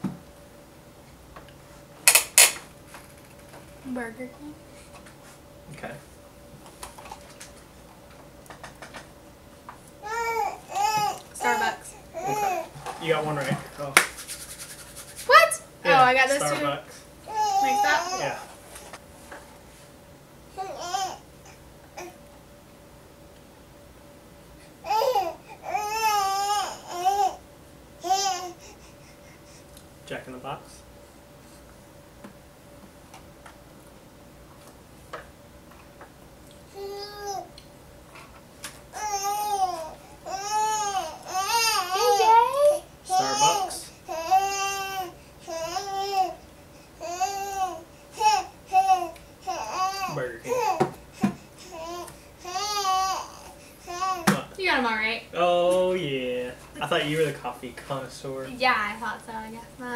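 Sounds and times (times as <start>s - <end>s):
faint steady hum: 0.0s - 59.9s.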